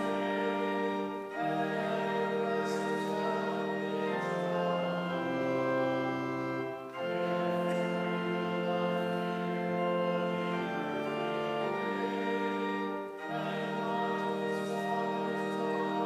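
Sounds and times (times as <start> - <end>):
church organ playing chords: 0.0 - 16.0.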